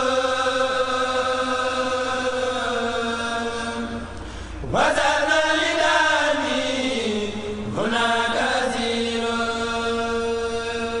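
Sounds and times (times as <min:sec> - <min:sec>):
person singing a religious chant: 0:00.0 - 0:11.0
steady held drone: 0:00.0 - 0:11.0.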